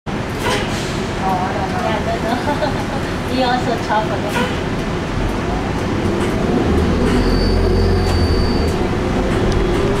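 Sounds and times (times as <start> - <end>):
vehicle cabin drone: 3.9 - 10.0.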